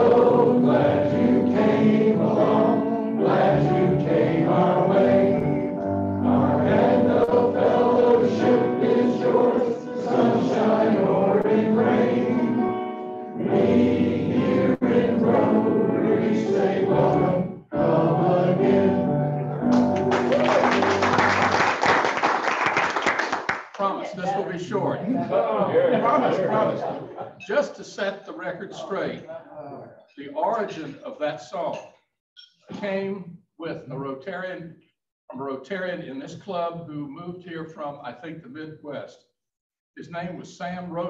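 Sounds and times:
group of people singing: 0:00.0 - 0:19.8
applause: 0:19.7 - 0:24.0.

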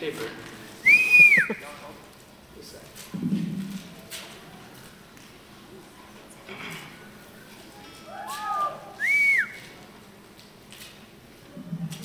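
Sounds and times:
person whistling: 0:00.8 - 0:01.6, 0:09.0 - 0:09.6.

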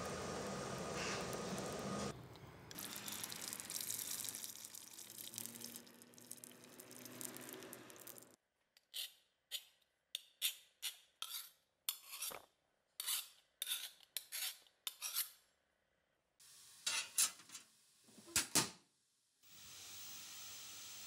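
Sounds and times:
file rasping on steel blade: 0:10.4 - 0:12.4, 0:13.0 - 0:15.4
steady hiss: 0:19.4 - 0:21.0.

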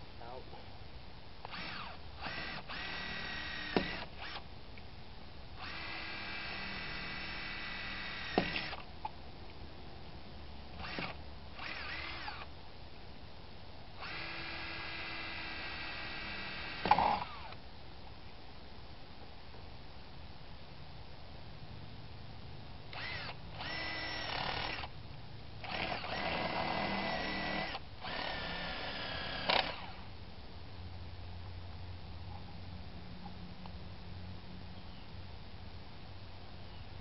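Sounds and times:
cordless drill running: 0:01.5 - 0:04.4, 0:05.6 - 0:08.8, 0:10.8 - 0:12.5, 0:14.0 - 0:17.6, 0:22.9 - 0:24.9, 0:25.6 - 0:30.1.

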